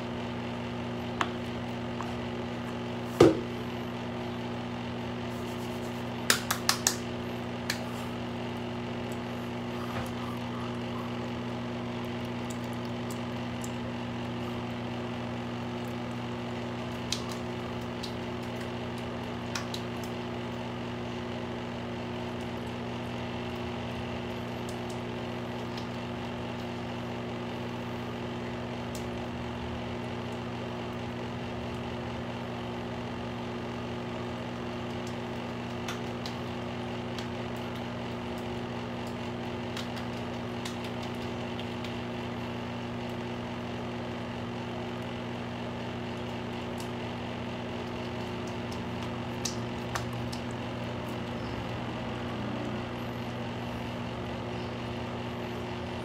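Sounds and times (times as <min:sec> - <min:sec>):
steady machine hum: 0:00.0 - 0:56.0.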